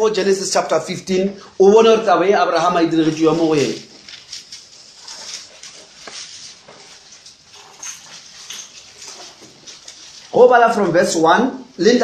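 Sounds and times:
paper pages rustling: 0:01.8 - 0:10.9.

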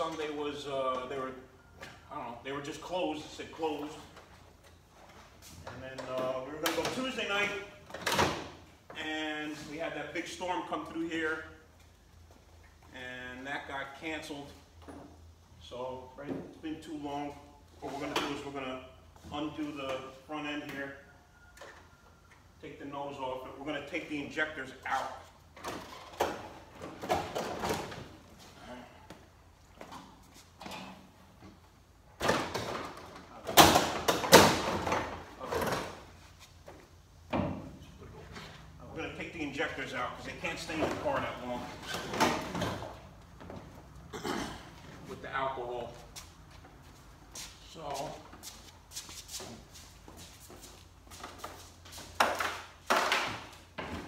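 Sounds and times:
knocks and rattles of car parts: 0:25.5 - 0:28.3, 0:29.8 - 0:38.4, 0:52.1 - 0:54.0
shuffling and handling noise: 0:45.8 - 0:52.8.

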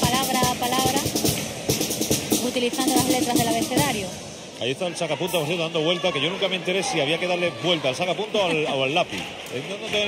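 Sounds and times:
bass drum and snare: 0:00.0 - 0:04.1
small band playing lively music: 0:00.0 - 0:04.2.

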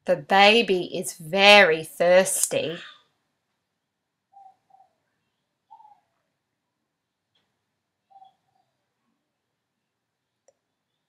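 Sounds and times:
distant bird calls: 0:04.3 - 0:06.2, 0:08.0 - 0:08.8.

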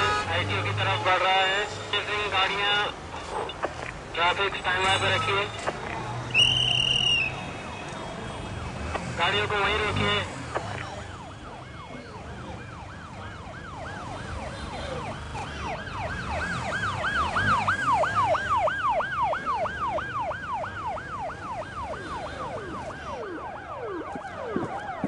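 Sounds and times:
low rumble of traffic: 0:00.0 - 0:25.0
vehicle siren yelping: 0:00.0 - 0:25.0.

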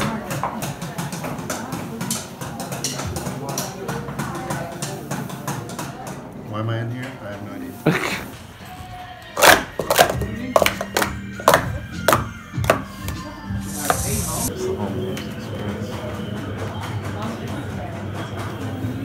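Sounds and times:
background music: 0:08.0 - 0:19.0
plastic cups clacking on a mat: 0:09.4 - 0:13.2.

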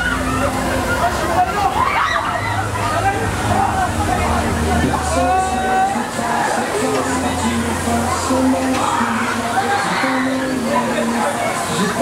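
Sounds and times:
bumper car track rumble: 0:00.0 - 0:09.4
riders' voices and shouts: 0:00.0 - 0:12.0.

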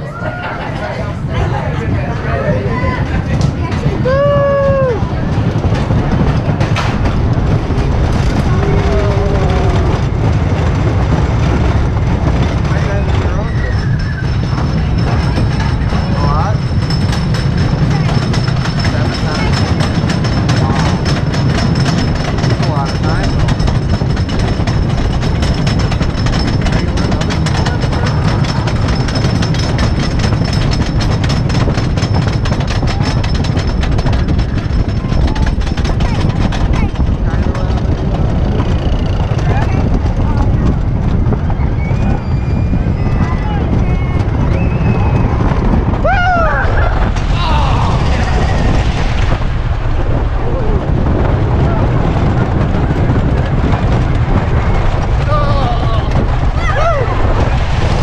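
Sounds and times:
roller coaster chain lift clicking: 0:00.0 - 0:50.2, 0:50.9 - 0:58.0
roller coaster rumbling on track: 0:00.0 - 0:58.0.

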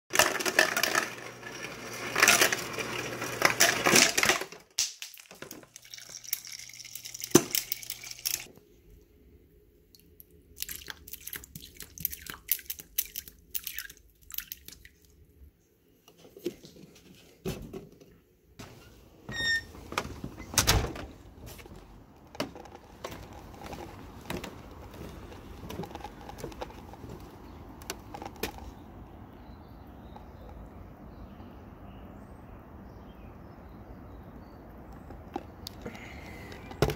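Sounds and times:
ice dispenser motor humming: 0:00.1 - 0:04.5
ice clattering into mug: 0:00.1 - 0:08.5
door clattering open: 0:19.3 - 0:21.3.

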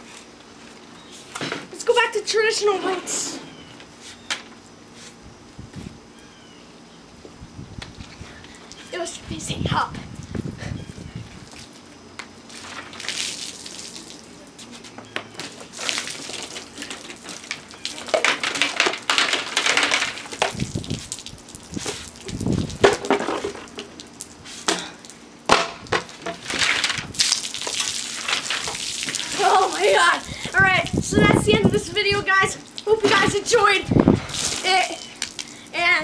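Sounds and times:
soda fizzing and splashing: 0:11.4 - 0:14.6, 0:15.6 - 0:35.8.

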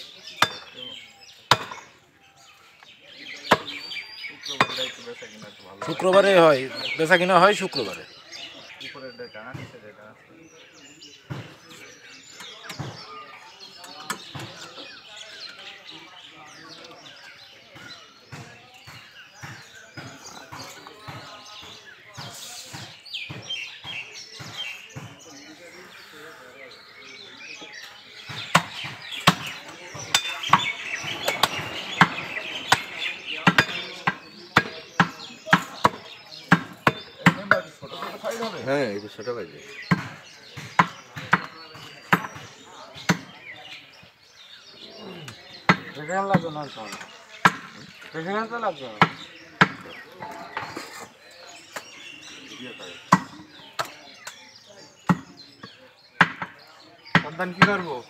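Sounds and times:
cleaver chopping meat on wood: 0:00.4 - 0:00.7, 0:01.5 - 0:01.9, 0:28.2 - 0:37.7, 0:39.8 - 0:43.3, 0:49.0 - 0:49.9, 0:55.0 - 0:57.9.

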